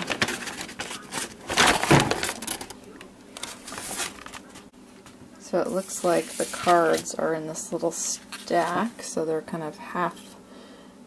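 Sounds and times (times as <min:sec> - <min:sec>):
paper and plastic rustling: 0:00.0 - 0:04.7, 0:05.7 - 0:07.2, 0:08.0 - 0:09.1.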